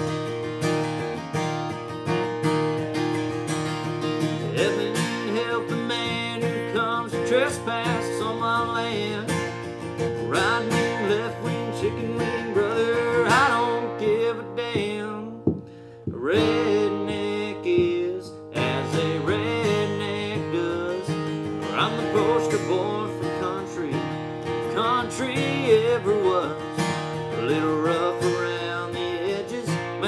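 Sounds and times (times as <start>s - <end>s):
acoustic guitar strumming: 0.0s - 30.0s.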